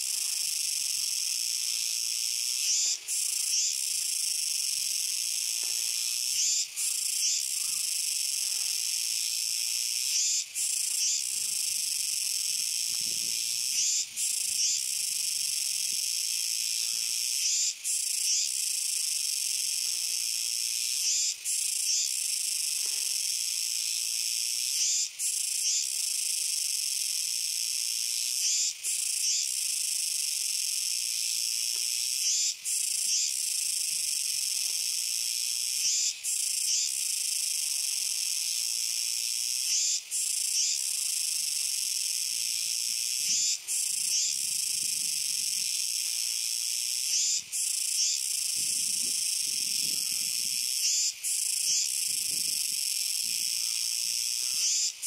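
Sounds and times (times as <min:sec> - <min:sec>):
cicadas buzzing: 0:00.0 - 0:55.0.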